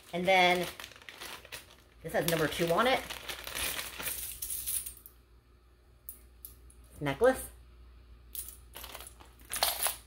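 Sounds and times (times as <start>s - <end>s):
plastic bag crinkling: 0.0s - 4.9s, 8.7s - 10.0s.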